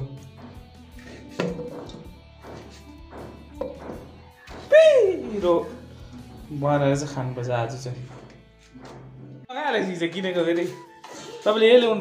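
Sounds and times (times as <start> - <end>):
background music: 0.0 - 12.0
knife thunk in steel pot: 1.4 - 4.0.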